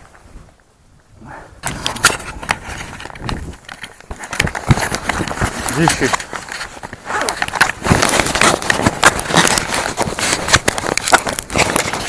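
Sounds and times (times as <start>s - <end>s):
knocks and scrapes on microphone: 1.6s - 12.0s
clothing rustling: 2.0s - 12.0s.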